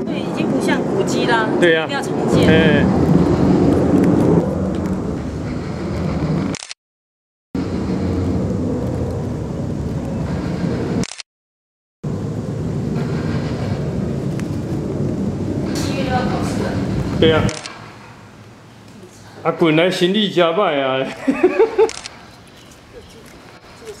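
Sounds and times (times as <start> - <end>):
low outdoor rumble: 0.0 - 6.6, 7.6 - 11.1, 12.0 - 24.0.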